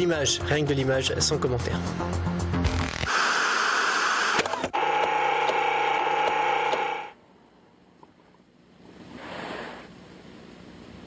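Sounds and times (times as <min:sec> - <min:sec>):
loud static hiss: 0:02.6 - 0:07.3, 0:08.7 - 0:11.0
steady humming tone: 0:03.1 - 0:09.2.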